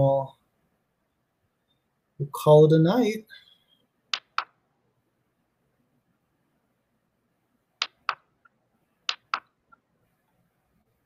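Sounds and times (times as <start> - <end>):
computer mouse clicks: 4.1 - 4.6, 7.8 - 8.3, 9.1 - 9.8.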